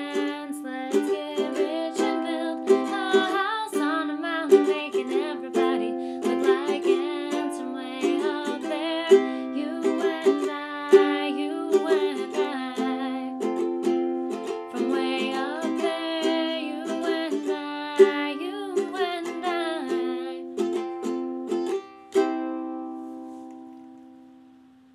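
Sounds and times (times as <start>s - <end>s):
woman singing: 0.0s - 20.8s
ukulele strumming: 0.0s - 24.9s.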